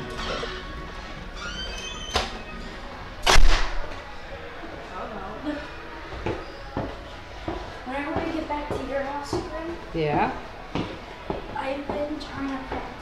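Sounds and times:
footsteps on wooden stairs: 6.1 - 12.1.

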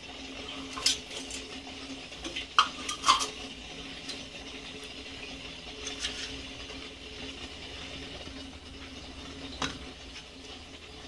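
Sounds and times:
spoon stirring in metal pot: 0.4 - 4.3, 5.7 - 6.8.

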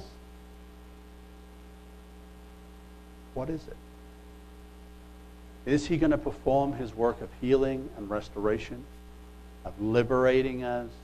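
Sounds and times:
electrical mains hum: 0.0 - 11.0
faint hiss: 0.0 - 11.0.

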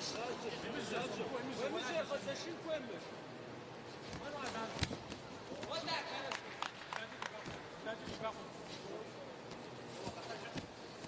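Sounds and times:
fight arena background noise: 0.0 - 11.0.

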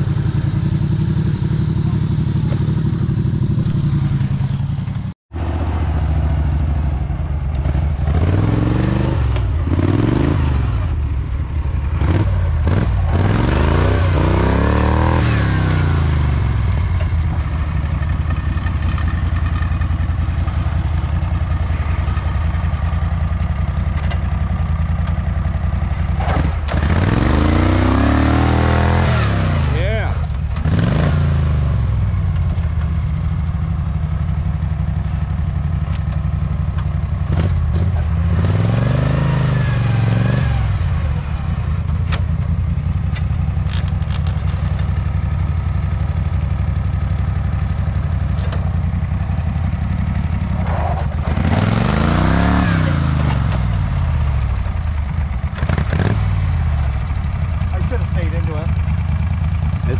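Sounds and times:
garden tractor engine revving: 7.5 - 10.7, 12.0 - 16.7, 26.2 - 31.8, 50.4 - 54.3.

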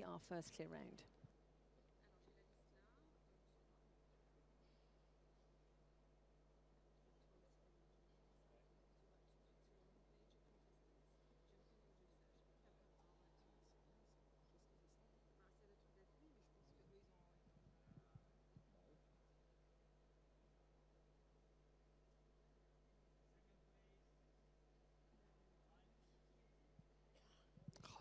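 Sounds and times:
faint low hum: 0.0 - 28.0
faint murmur: 0.0 - 28.0.

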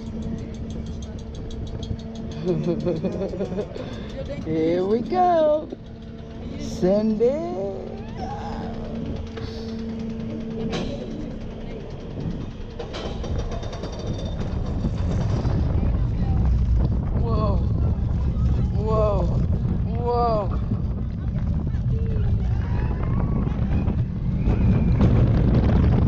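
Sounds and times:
roller coaster humming on lift: 0.0 - 26.0
wheels rumbling on track: 0.0 - 26.0
wind rushing: 14.2 - 26.0
riders whooping: 21.7 - 25.6.

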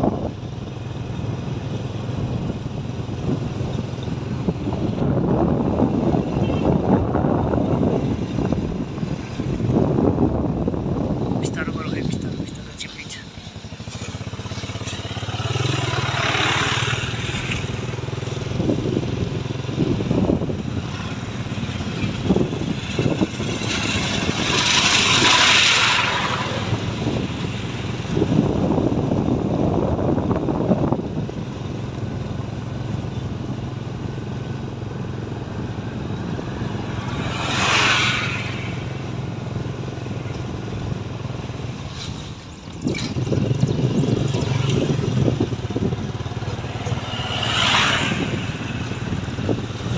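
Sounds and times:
vehicle engine humming: 0.0 - 49.9
rushes of noise: 4.2 - 31.5, 35.0 - 49.9.

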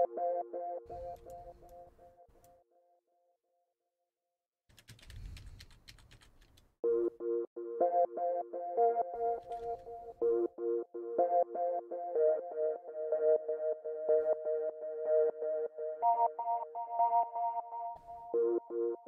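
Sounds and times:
flute-like synth melody loop: 0.0 - 1.5, 6.8 - 19.0
computer keyboard and mouse clicks: 1.1 - 1.8, 4.7 - 6.7, 9.4 - 9.9.

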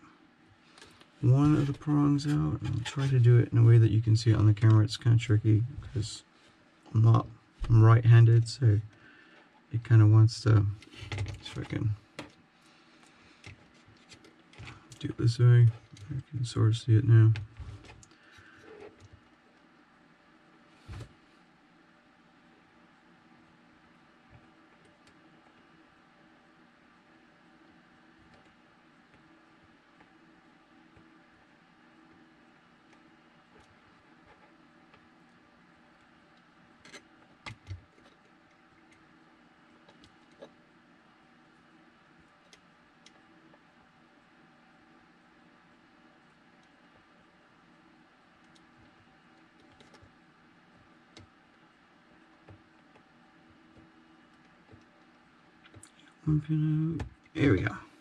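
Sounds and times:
faint room hum: 0.0 - 58.0.

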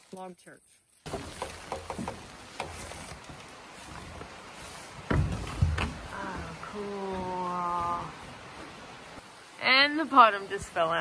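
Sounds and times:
heavy thumps: 5.0 - 6.6.

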